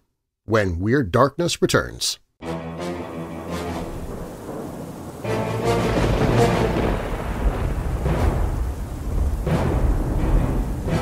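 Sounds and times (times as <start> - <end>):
thunder and rain: 3.4 - 11.0.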